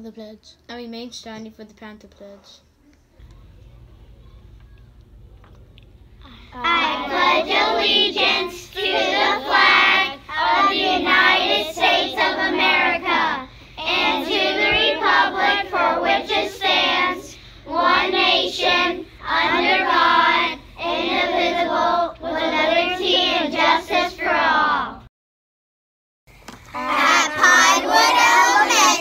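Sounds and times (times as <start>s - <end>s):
children reciting in unison: 6.6s - 25.0s, 26.7s - 29.0s.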